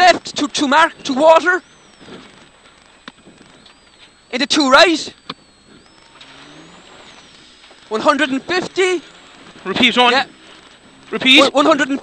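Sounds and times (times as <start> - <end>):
car engine accelerating: 0.0 - 12.0
high whine rising in pitch: 0.0 - 12.0.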